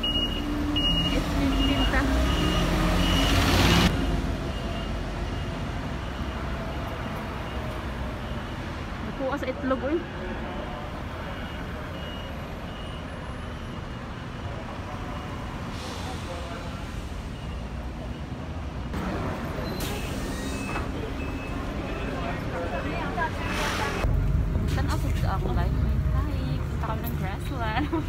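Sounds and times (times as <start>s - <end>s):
rumble of passing vehicles: 0.0s - 28.0s.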